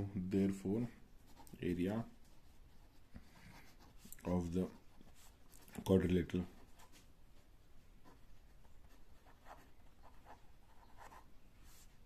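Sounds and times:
pen scratching on paper: 8.0s - 11.8s.

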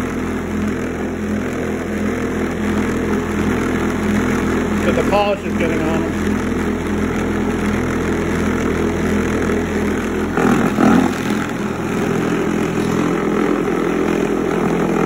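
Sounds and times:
electric motor humming: 0.0s - 15.0s.

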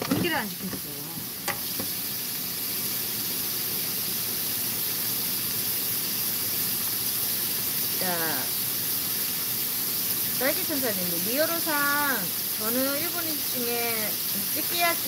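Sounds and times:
vegetables sizzling in a wok: 0.0s - 15.0s.

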